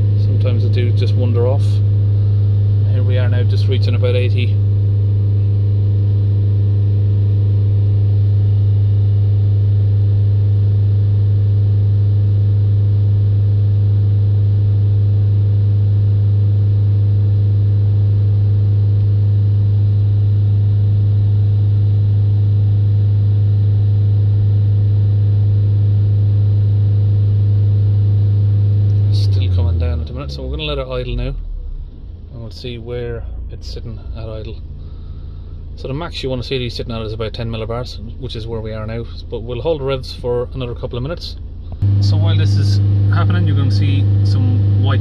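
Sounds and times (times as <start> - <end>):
diesel engine at high idle: 0.0 - 45.0.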